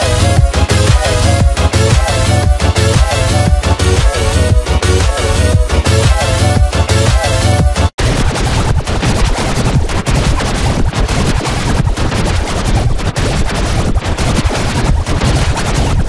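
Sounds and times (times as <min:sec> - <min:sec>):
heavily distorted crackling music: 0:00.0 - 0:16.0.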